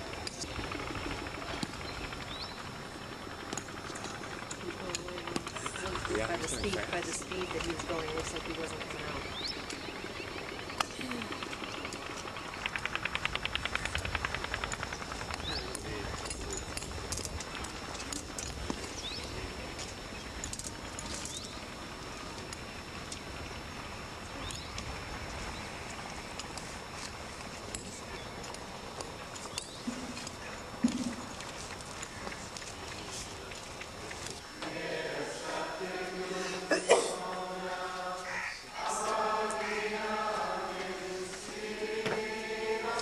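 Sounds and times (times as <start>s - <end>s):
small birds chirping: 0.2s - 3.9s, 4.6s - 13.0s, 14.8s - 34.6s.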